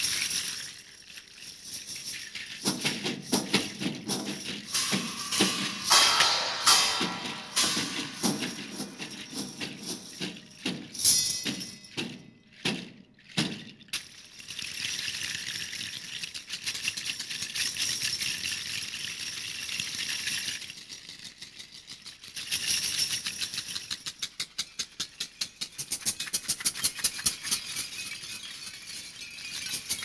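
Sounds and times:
hand-held percussion rattles shaking: 0.0 - 30.0.

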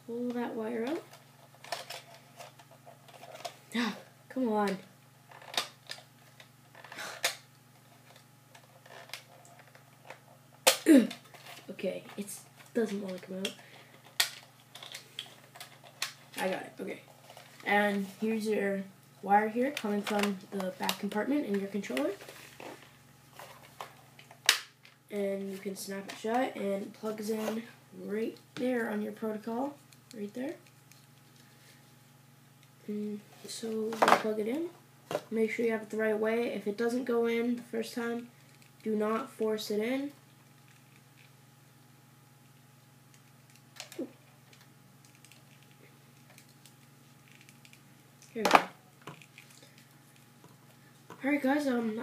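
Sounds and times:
faint room hum: 0.0 - 52.0.

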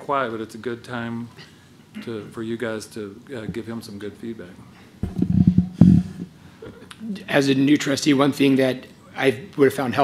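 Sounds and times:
bumps on a desk: 5.0 - 6.3
microphone handling noise: 5.0 - 6.4.

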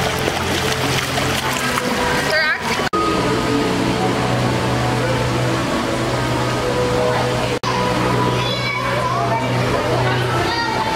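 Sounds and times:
music: 0.0 - 10.9
rushing water: 0.0 - 10.9
faint voices: 1.5 - 10.9.

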